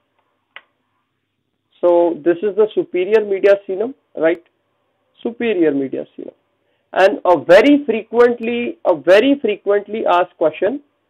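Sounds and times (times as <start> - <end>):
man speaking: 1.8 - 4.5, 5.2 - 6.4, 7.0 - 10.8.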